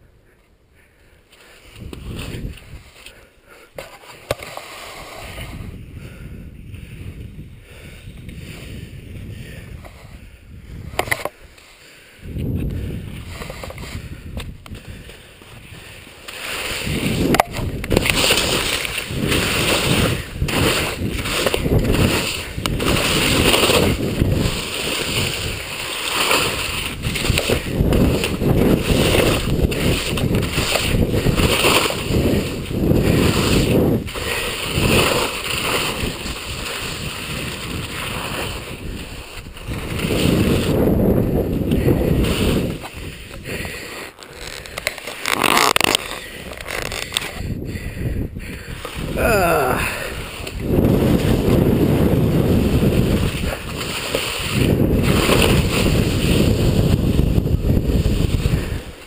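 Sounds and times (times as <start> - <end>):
skis scraping over snow: 1.5 - 5.8, 12.6 - 14.1, 14.7 - 47.5, 48.7 - 59.0.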